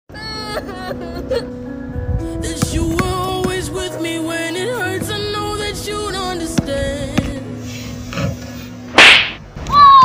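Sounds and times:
whip swish sound effect: 0:08.9 - 0:09.4.

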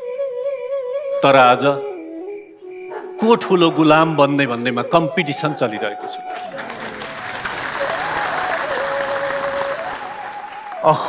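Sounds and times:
audience applauding: 0:06.4 - 0:11.0.

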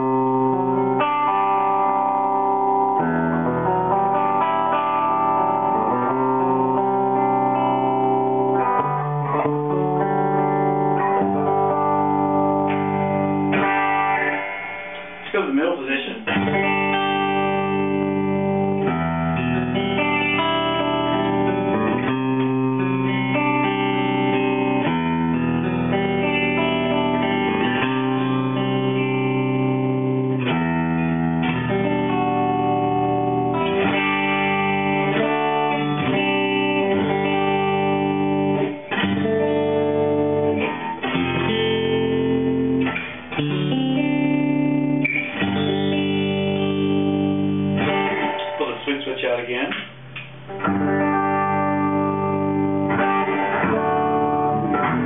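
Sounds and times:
electric guitar ringing chords: 0:00.0 - 0:55.0.

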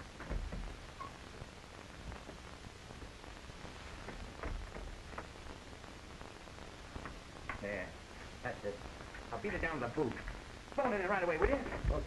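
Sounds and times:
soft low thumps: 0:00.0 - 0:07.6
film soundtrack hiss and crackle: 0:00.0 - 0:12.0.

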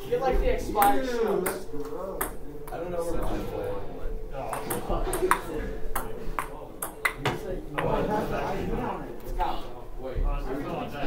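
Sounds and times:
table tennis ball hits: 0:04.5 - 0:07.9.

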